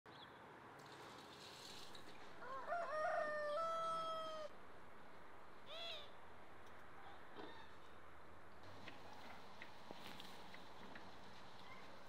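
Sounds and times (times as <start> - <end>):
rooster crowing: 2.4 - 4.5.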